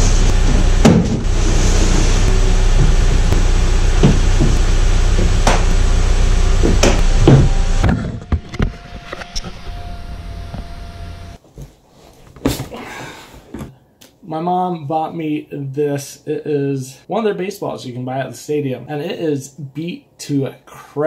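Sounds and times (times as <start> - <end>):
car engine running: 0.0 - 8.5
knocks and clatter: 0.3 - 1.3.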